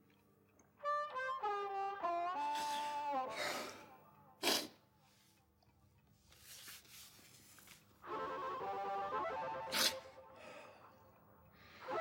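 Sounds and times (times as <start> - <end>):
brass film music: 0.8 - 4.2, 8.0 - 10.6, 11.7 - 12.0.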